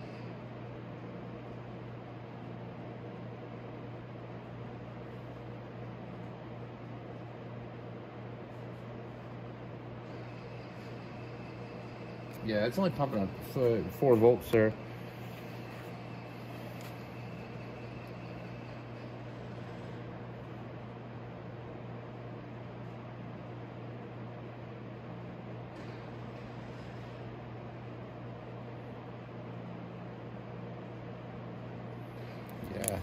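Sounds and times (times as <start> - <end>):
battery charger humming: 32.4 - 33.0.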